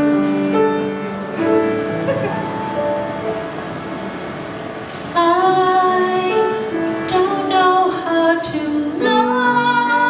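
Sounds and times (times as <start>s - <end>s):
soft piano accompaniment: 0.0s - 10.0s
woman singing: 5.2s - 10.0s.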